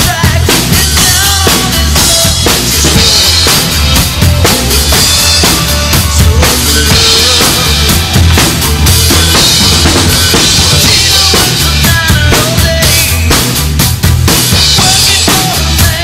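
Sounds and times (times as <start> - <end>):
recorded song with vocals: 0.0 - 13.8, 14.5 - 16.0
drum kit playing rock beat: 0.0 - 16.0.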